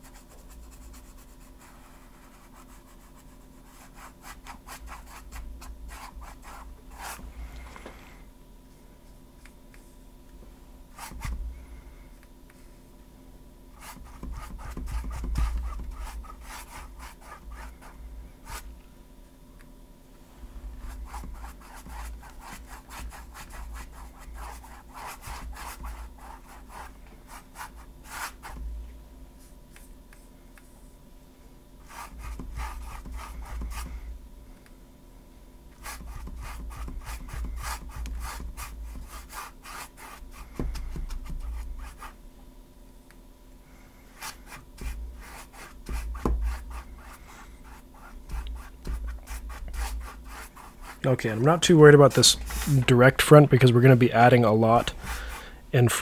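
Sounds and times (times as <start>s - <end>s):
paintbrush scrubbing on canvas: 44.2s - 52.9s.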